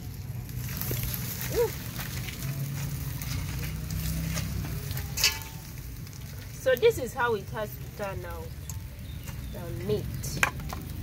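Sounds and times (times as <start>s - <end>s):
fire snaps: 0.0s - 11.0s
wood fire crackling: 0.0s - 11.0s.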